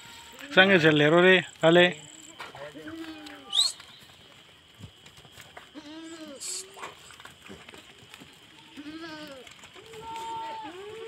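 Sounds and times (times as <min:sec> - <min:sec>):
goat bleating: 0:05.8 - 0:06.8, 0:08.5 - 0:11.0.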